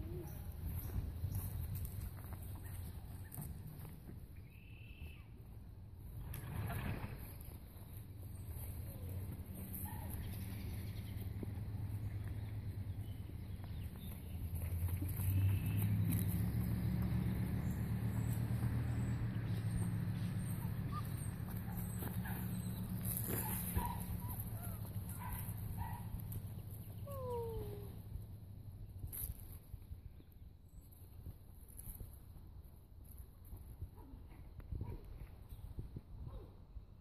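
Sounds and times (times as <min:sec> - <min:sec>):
puppies yipping: 0:19.7 - 0:26.2.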